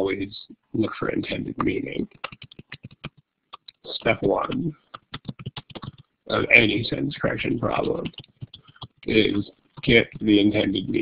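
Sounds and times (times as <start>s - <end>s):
typing on computer keyboard: 2.2s - 3.8s, 5.0s - 6.1s, 8.0s - 9.1s.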